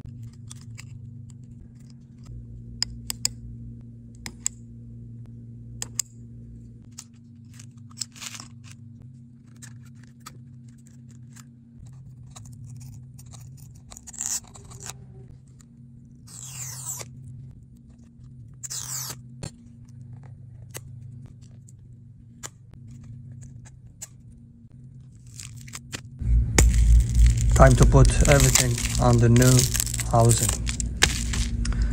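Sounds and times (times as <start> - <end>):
low hum: 0.0 - 31.9
handling noise: 26.2 - 31.9.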